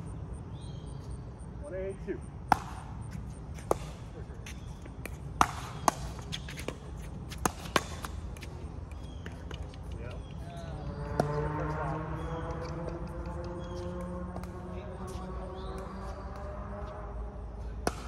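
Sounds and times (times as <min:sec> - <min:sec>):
ball bouncing on court: 0:02.4 - 0:17.0, 0:17.8 - 0:18.0.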